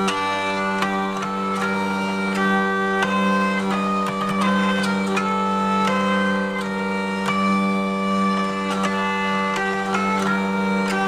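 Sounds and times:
hurdy-gurdy playing: 0.0s - 11.0s.

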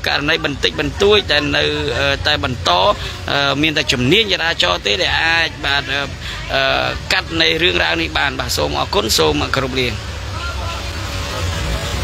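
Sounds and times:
faint voices: 0.0s - 12.0s
street traffic rumble: 0.0s - 12.0s.

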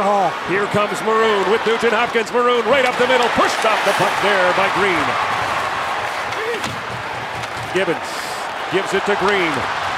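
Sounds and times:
arena crowd noise: 0.0s - 9.9s
sticks and puck clacking: 2.6s - 4.1s, 5.4s - 7.9s, 9.1s - 9.6s.

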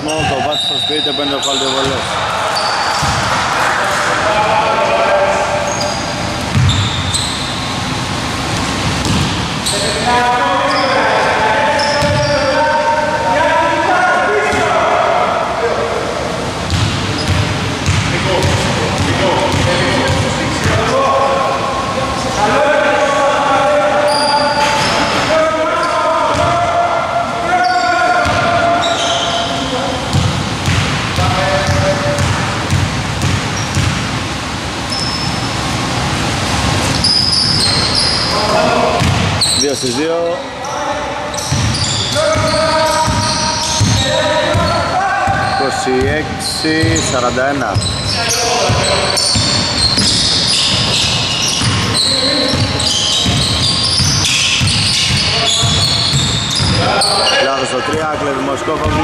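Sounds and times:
people talking: 0.0s - 6.7s, 9.6s - 32.8s, 37.9s - 54.3s, 54.9s - 59.0s
basketball dribbling on wooden floor: 53.2s - 56.8s.

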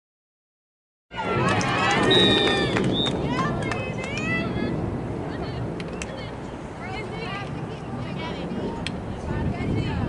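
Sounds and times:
high-pitched voices shouting and cheering: 1.1s - 4.8s
steady low rumble: 1.1s - 10.0s.

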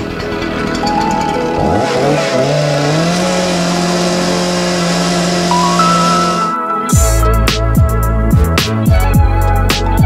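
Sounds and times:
chainsaw revving: 1.6s - 6.5s.

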